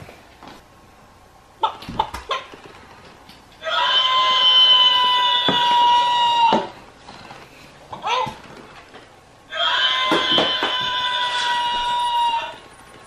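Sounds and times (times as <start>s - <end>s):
electronic rooster cry: 3.6s - 6.7s, 9.5s - 12.6s.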